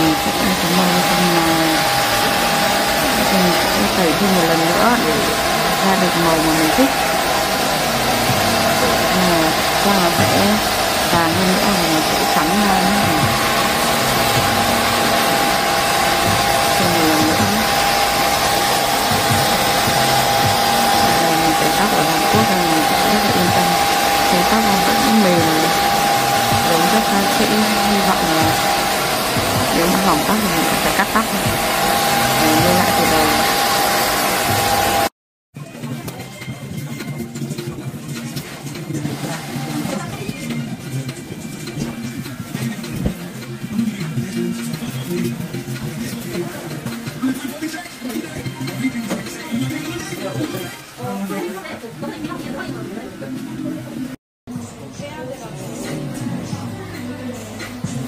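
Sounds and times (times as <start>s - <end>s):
hair dryer blowing: 0.0s - 35.1s, 38.4s - 47.3s.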